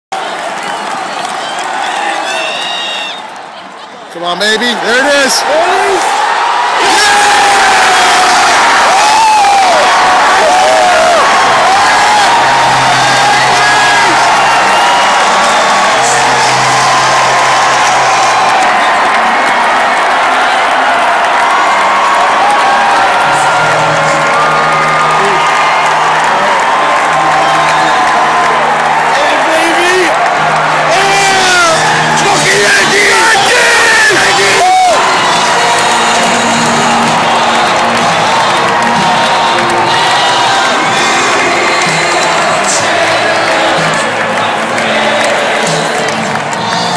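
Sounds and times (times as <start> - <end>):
stadium crowd cheering: 0.0 - 46.9
music: 7.2 - 46.9.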